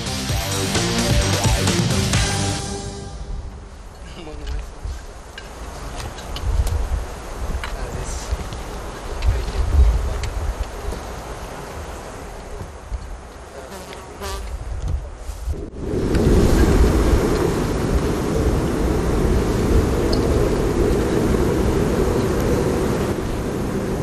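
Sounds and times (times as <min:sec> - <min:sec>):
dense buzzing drone: 0:00.0 - 0:04.0.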